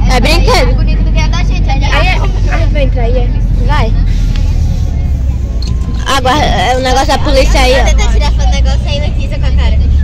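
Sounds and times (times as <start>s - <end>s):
passengers chattering: 0.0s - 10.0s
van engine and road noise: 0.0s - 10.0s.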